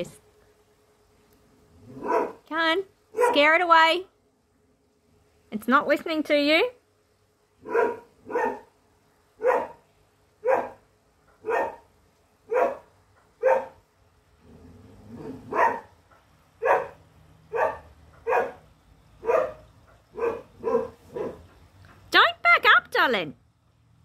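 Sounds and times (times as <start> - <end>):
dog barking: 2.0 - 2.4, 3.1 - 3.5, 7.6 - 8.7, 9.4 - 9.8, 10.4 - 10.8, 11.4 - 11.9, 12.5 - 13.8, 15.2 - 15.9, 16.6 - 21.5.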